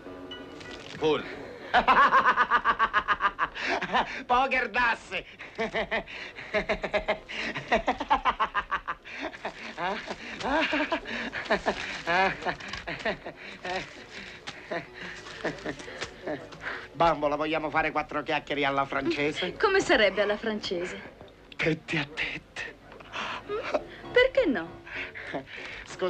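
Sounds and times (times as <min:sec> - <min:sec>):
people snickering and chuckling: 0:01.6 - 0:04.2, 0:05.4 - 0:16.8.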